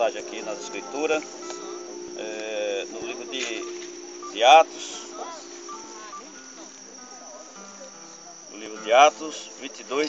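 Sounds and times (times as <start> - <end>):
faint indistinct sounds: 0.0 - 10.0
insects droning: 0.0 - 10.0.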